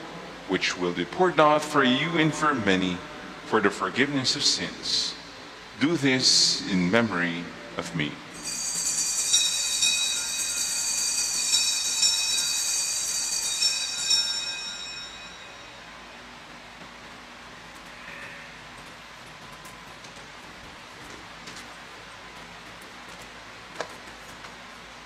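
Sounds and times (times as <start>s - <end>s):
altar bells ringing: 8.4s - 16.4s.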